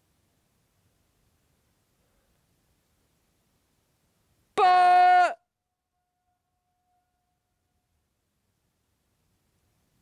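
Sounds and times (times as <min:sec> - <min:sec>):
man shouting a held note: 0:04.6 - 0:05.5.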